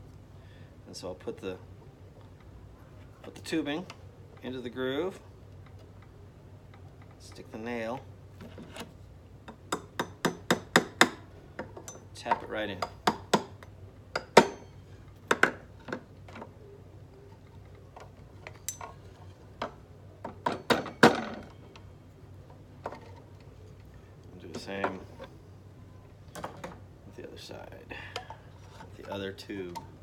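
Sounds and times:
hammer tapping nails into wood: 0:09.6 - 0:11.2, 0:12.8 - 0:13.6.

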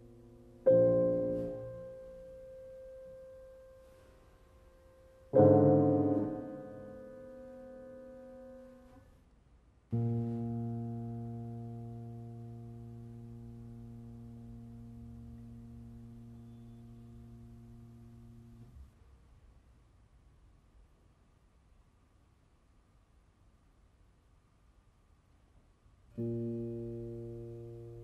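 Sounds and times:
piano chords ringing: 0:00.0 - 0:09.0, 0:09.9 - 0:18.7, 0:26.2 - 0:28.0.

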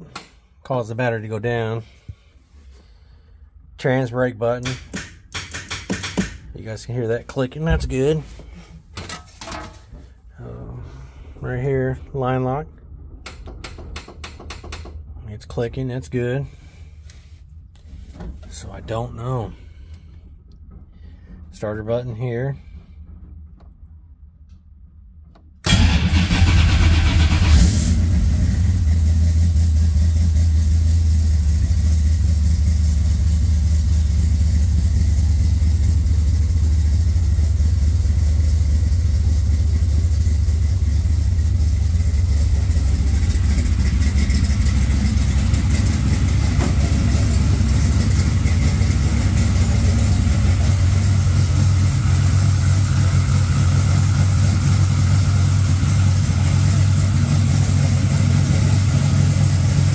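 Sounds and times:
car engine starting and idling: 0:06.3 - 0:09.1, 0:09.7 - 0:59.9.

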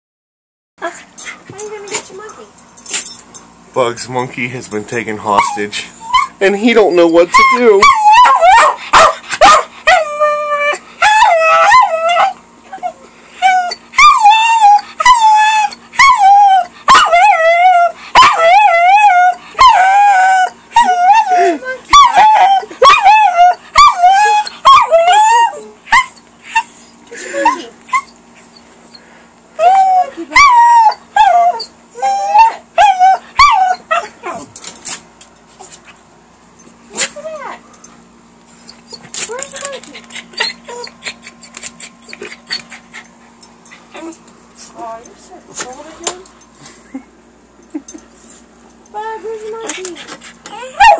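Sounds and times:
small dog howling and whining: 0:05.3 - 0:26.7, 0:29.6 - 0:34.5, 0:38.7 - 0:42.8, 0:50.5 - 0:50.9.

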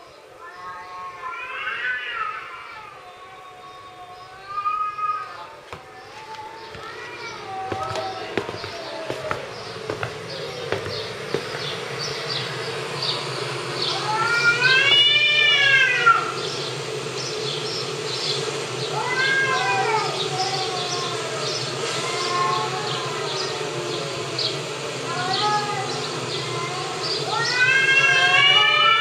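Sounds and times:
cats yowling: 0:00.0 - 0:11.7, 0:13.8 - 0:16.5, 0:18.9 - 0:29.0
steady high chirping: 0:06.5 - 0:15.0, 0:16.2 - 0:21.8.

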